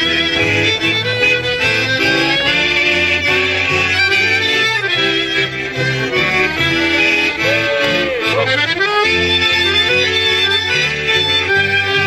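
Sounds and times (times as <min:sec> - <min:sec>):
accordion: 0:00.0 - 0:12.0
bass line: 0:00.0 - 0:12.0
fiddle: 0:00.0 - 0:12.0.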